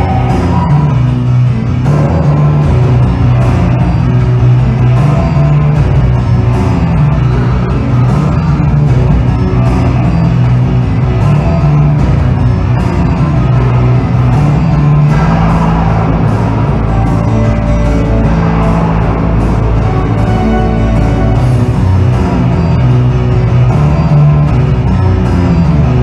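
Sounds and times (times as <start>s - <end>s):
orchestra playing: 0.0s - 25.7s
percussion hits: 0.0s - 26.0s.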